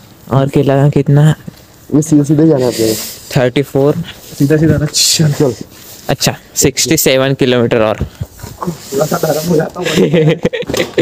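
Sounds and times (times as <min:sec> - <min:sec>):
soft hiss: 0:00.0 - 0:11.0
people talking: 0:00.3 - 0:11.0.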